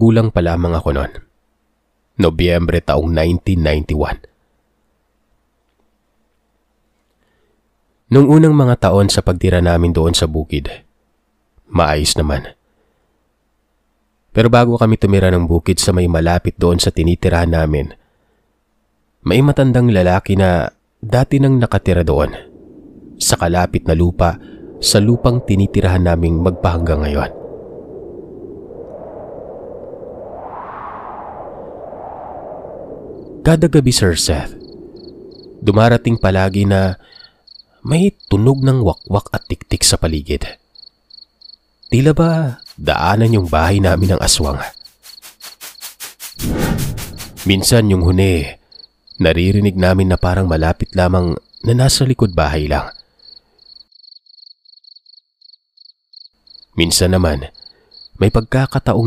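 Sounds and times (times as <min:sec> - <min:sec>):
faint cricket chirping: 0:18.0 - 0:59.0
low wind-like whoosh: 0:21.4 - 0:36.8, 0:42.3 - 0:48.5.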